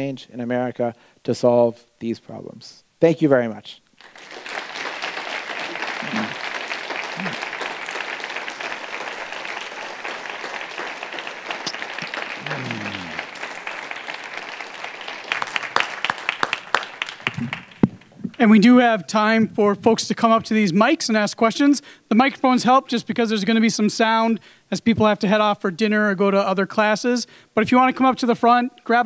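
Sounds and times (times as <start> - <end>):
audience clapping: 4.0 - 18.5.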